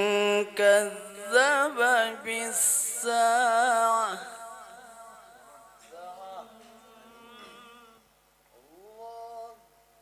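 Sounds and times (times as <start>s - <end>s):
person chanting melodic recitation: 0.0s - 4.9s, 5.8s - 8.0s, 8.6s - 10.0s.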